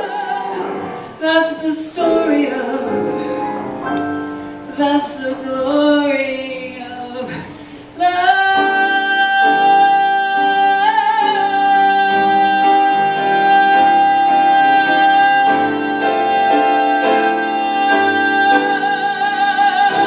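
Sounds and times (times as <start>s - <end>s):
jazz piano chords: 0.0s - 7.4s.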